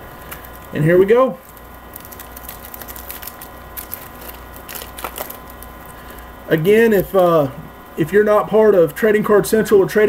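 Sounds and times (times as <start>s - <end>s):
foil wrapper crinkling and tearing: 0.0s - 7.2s
electrical hum: 0.0s - 10.0s.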